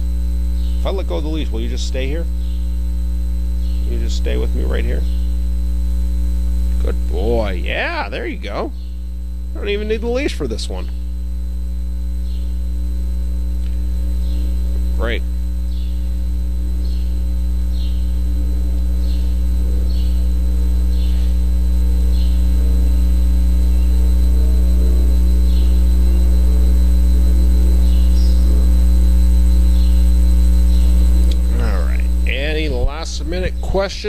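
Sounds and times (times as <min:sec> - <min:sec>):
electrical mains hum: 0:00.0 - 0:34.0.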